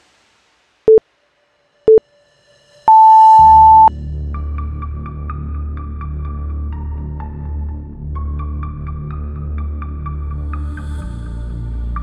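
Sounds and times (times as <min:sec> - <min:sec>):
interval timer beeps: 0:02.9 - 0:03.9.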